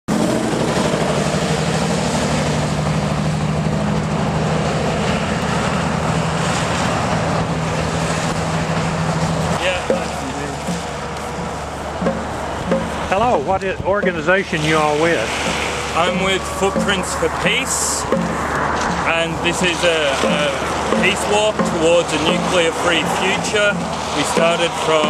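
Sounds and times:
traffic hissing on wet road: 0.1 - 25.0
truck diesel engine running: 0.1 - 25.0
person speaking: 9.6 - 11.5, 12.9 - 18.1, 18.9 - 25.0.

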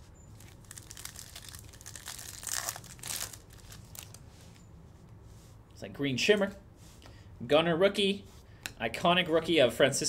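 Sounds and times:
foil wrapper crinkling and tearing: 0.4 - 4.2
cards rustling: 0.4 - 4.6.

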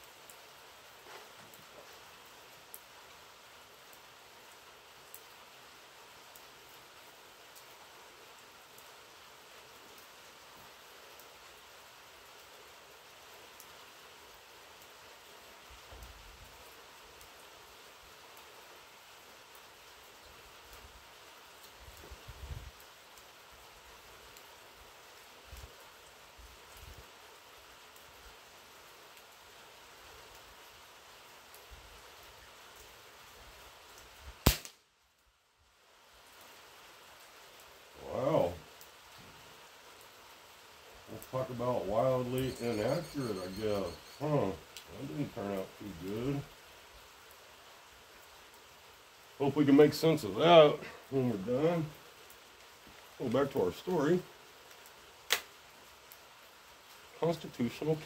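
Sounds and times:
steady rain hissing: 0.0 - 58.0
pellet rifle shot: 34.5 - 34.8.

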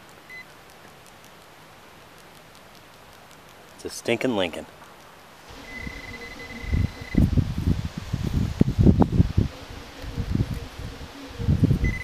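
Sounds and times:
high electronic beep: 5.6 - 7.2.

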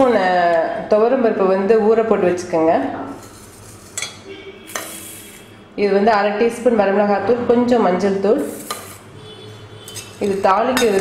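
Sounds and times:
steel bowl clinking: 9.9 - 11.0.

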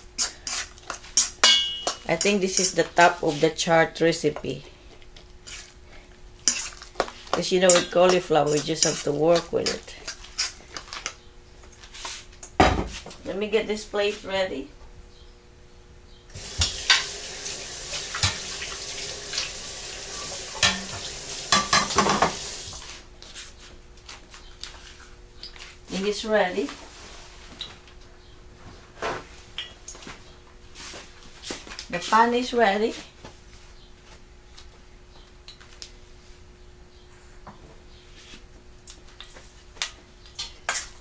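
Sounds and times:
metal spoon clinking in a bowl: 1.4 - 2.8.

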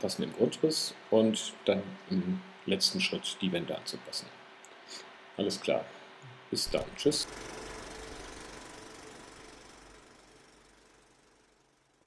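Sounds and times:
machine noise with low hum: 0.0 - 12.0.

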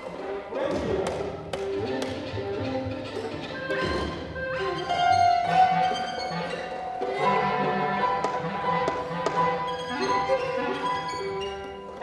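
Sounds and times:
chamber ensemble playing: 1.6 - 12.0.

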